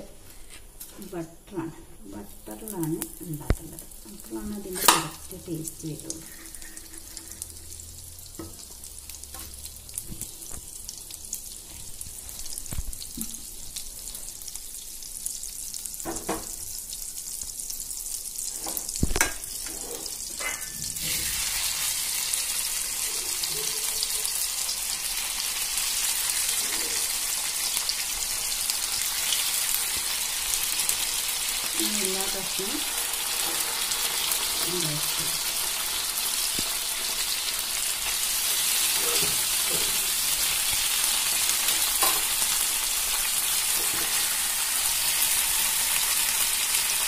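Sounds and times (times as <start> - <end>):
butter sizzling in a frying pan: 2.1 - 47.0
chicken pieces frying: 2.4 - 47.0.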